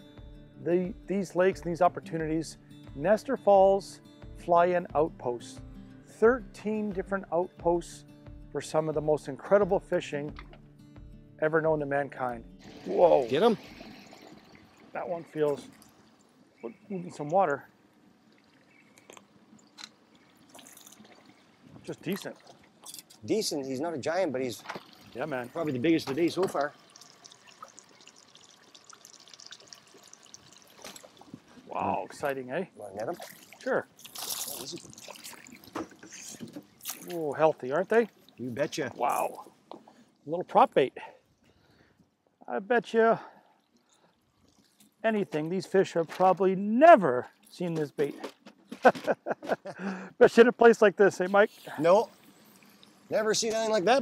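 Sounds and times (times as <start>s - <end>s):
man's voice: 0.6s - 5.6s
fish splashing in water: 18.2s - 22.9s, 24.6s - 25.2s, 26.7s - 31.7s, 33.2s - 37.2s.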